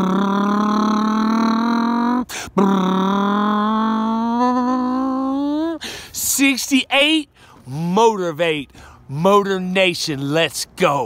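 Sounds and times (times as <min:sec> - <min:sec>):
man imitating engine with voice: 0:00.0 - 0:05.8.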